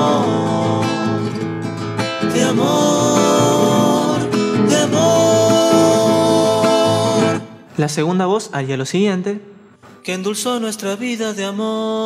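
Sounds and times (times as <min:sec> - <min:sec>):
nylon-string guitar: 0:00.0 - 0:07.6
male vocal harmony singing: 0:00.0 - 0:07.7, 0:10.0 - 0:12.0
man speaking: 0:07.7 - 0:09.6.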